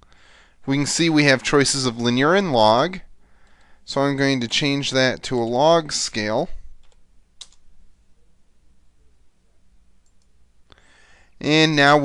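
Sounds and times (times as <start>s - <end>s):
soft hiss: 0.0s - 12.0s
faint clicks: 6.8s - 7.6s, 10.0s - 10.8s.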